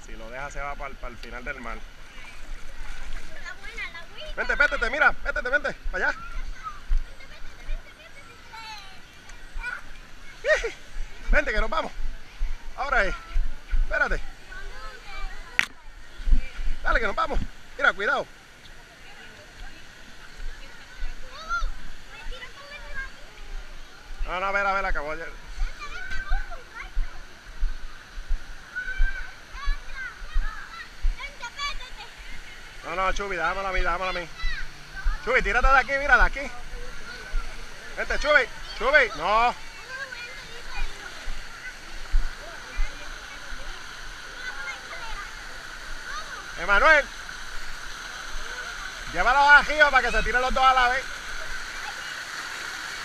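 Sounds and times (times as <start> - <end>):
water noise: 0.0 - 53.0
child's high-pitched call: 28.7 - 31.9
faint background voices: 36.4 - 49.3.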